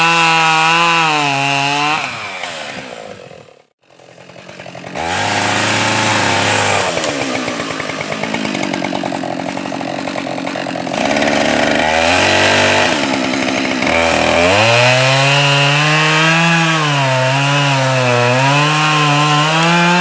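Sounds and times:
chainsaw cutting tree trunk: 0.0 - 20.0.

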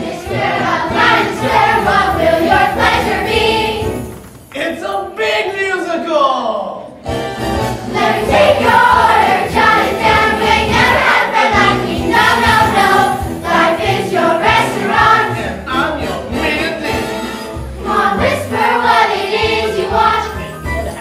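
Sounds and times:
group of voices singing: 0.0 - 4.1, 7.1 - 20.5
instrumental accompaniment: 0.0 - 4.6, 7.0 - 21.0.

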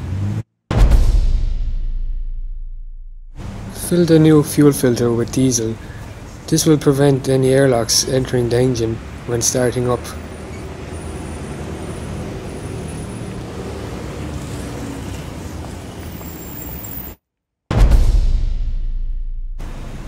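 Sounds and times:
low rumble: 0.7 - 3.9.

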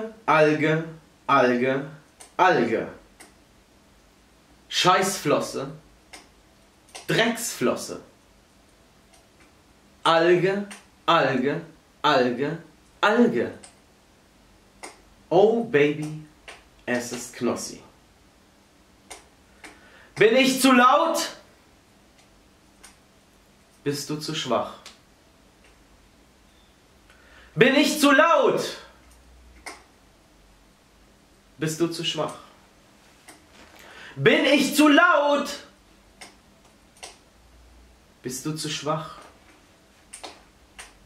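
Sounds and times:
faint sharp clicks: 6.1 - 7.1, 14.8 - 15.0, 19.1 - 20.3, 29.0 - 29.9, 36.2 - 37.2, 39.2 - 41.0.

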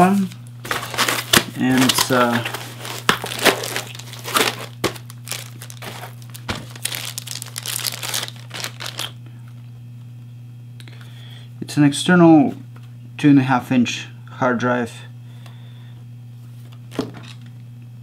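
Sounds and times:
plastic wrapping crinkling: 0.0 - 9.2.

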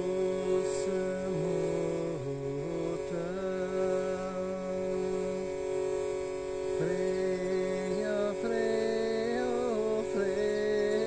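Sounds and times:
drone of held tones: 0.0 - 11.0
man chanting: 0.0 - 11.0.

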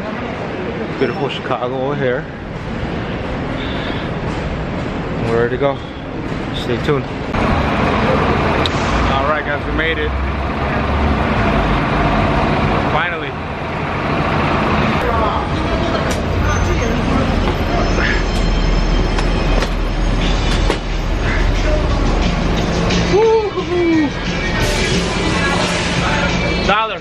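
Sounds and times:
rumble of traffic: 0.0 - 27.0.

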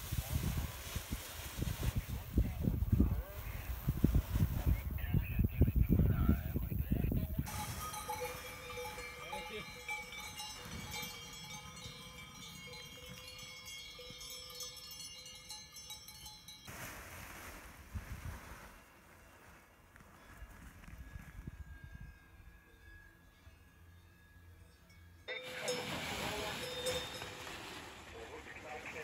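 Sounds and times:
wind buffeting microphone: 0.0 - 14.4
cowbells ringing: 7.2 - 16.7, 21.4 - 28.2.

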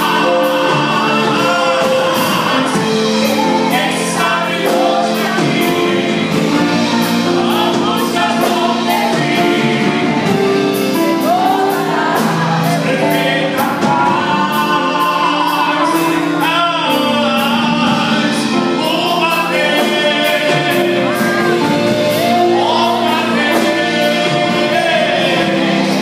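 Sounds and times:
drum kit beat: 0.0 - 26.0
electric keyboard: 0.0 - 26.0
women singing gospel: 0.0 - 26.0.

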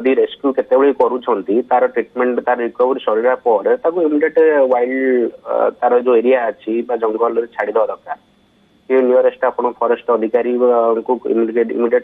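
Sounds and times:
man talking over phone line: 0.0 - 8.2, 8.9 - 12.0.

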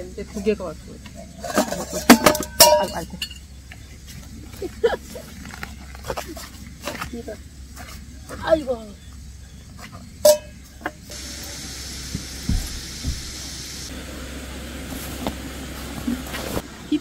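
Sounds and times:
low knocks of handling: 12.1 - 13.4.

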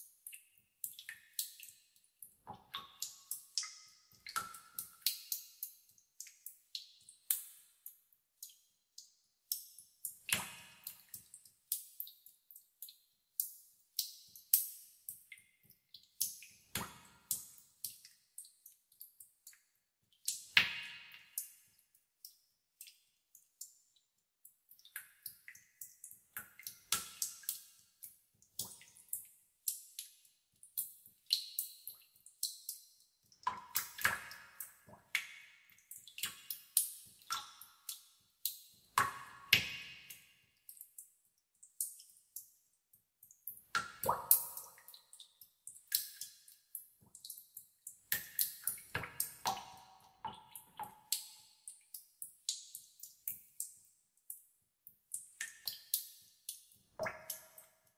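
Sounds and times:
water drops dripping into pool: 0.0 - 57.9.

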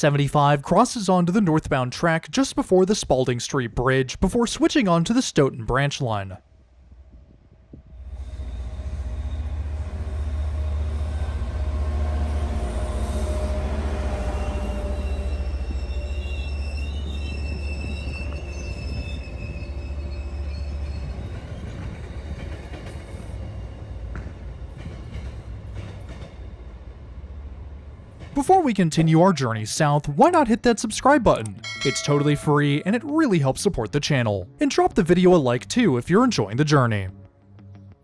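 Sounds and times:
train passing with deep rumble: 6.4 - 29.4
high wheel squeal: 12.6 - 22.7.

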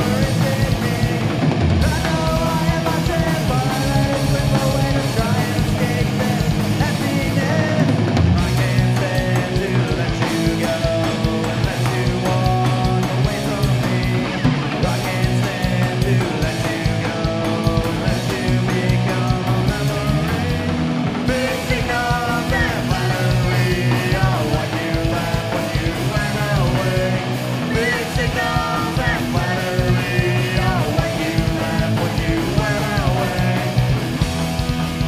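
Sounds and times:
punk rock band playing: 0.0 - 35.0.

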